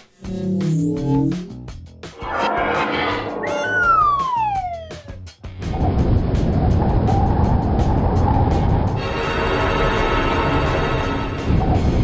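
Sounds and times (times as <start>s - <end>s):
cartoon falling whistle: 2.3s - 5.2s.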